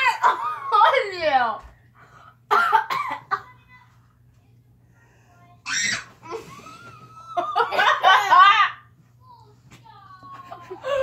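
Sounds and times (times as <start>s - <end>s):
harsh cough: 2.5s - 3.4s
girls laughing loudly: 6.3s - 8.7s, 10.3s - 11.0s.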